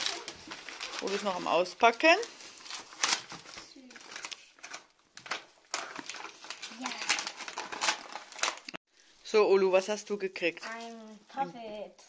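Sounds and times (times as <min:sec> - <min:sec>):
plastic wrap crinkling: 0:00.0 - 0:08.8.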